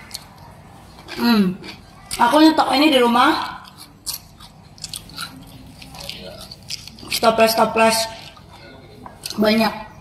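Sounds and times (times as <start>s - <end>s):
potato sticks crunching: 0.0s - 9.6s.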